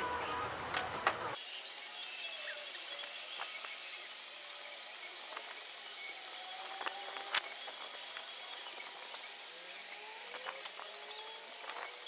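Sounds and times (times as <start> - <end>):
steady high hiss: 0.1 - 12.0.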